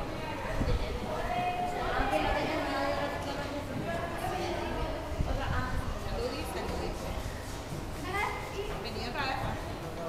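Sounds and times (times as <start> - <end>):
indistinct chatter in a hall: 0.0 - 10.0.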